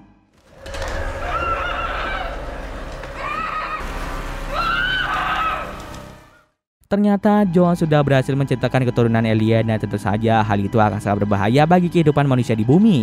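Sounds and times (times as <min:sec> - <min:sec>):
low rumbling drone: 0:00.4 - 0:06.5
woman's muffled screams: 0:04.5 - 0:05.8.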